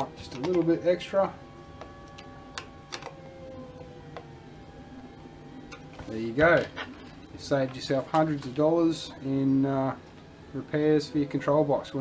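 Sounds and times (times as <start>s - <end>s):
faint steady tones humming: 0.0s - 12.0s.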